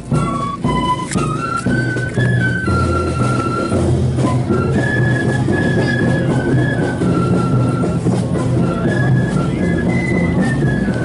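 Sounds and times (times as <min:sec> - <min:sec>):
marching flute band: 0:00.0 - 0:11.0.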